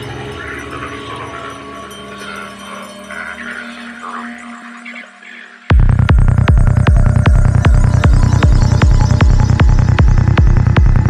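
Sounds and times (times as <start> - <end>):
kick drum: 5.7 - 11.0
rolling bassline: 5.7 - 11.0.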